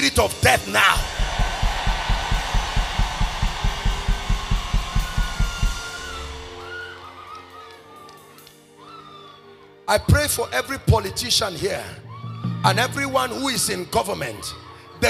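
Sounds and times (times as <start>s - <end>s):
rapid kick drum beats: 0.5s - 6.5s
sustained keyboard chords: 1.0s - 6.5s.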